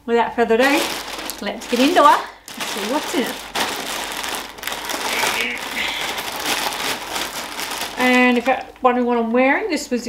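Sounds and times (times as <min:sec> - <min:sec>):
plastic bag crinkling: 0:00.6 - 0:09.0.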